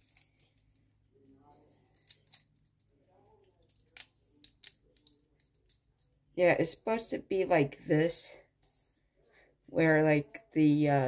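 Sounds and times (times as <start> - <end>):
plastic toy bricks clicking: 1.6 - 2.7, 3.4 - 5.8.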